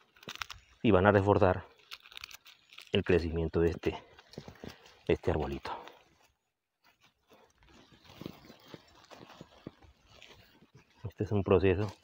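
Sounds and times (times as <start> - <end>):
hands rustling dry leaves and soil: 0.0 - 12.0.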